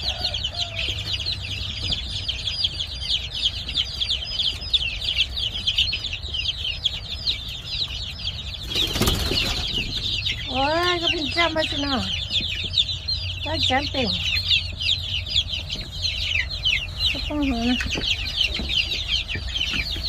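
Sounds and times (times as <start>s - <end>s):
chicks peeping: 0.0s - 20.0s.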